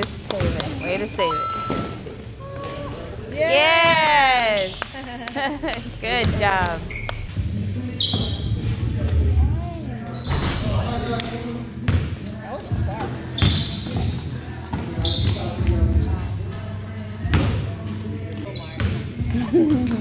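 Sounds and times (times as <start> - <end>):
sneakers squeaking: 0.0 - 3.0, 3.8 - 5.0, 6.2 - 20.0
basketball bouncing on gym floor: 3.8 - 4.2, 6.1 - 7.0.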